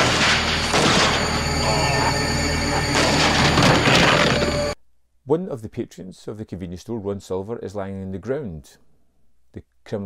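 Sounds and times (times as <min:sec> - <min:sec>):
crash with breaking debris: 0:00.0 - 0:01.5, 0:02.7 - 0:04.8
dramatic film score: 0:00.0 - 0:04.8.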